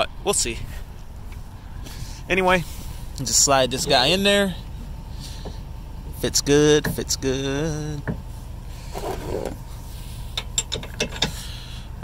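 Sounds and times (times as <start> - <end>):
metal scraping in hitch receiver: 8.7 - 11.6
light metal clicks and knocks: 10.3 - 11.4.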